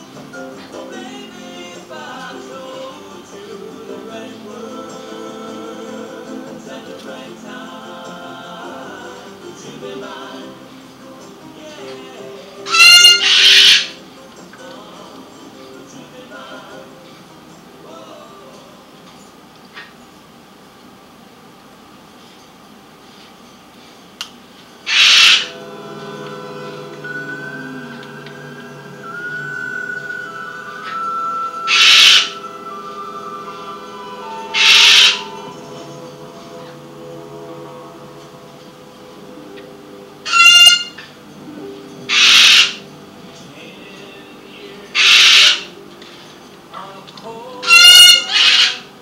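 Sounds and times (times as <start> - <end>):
soft background music: 0.0 - 19.4, 24.8 - 49.0
macaw raspy screech: 12.7 - 14.0, 24.9 - 25.5, 30.8 - 32.5, 34.4 - 35.5, 40.3 - 41.0, 42.1 - 42.8, 45.0 - 45.7, 47.6 - 48.9.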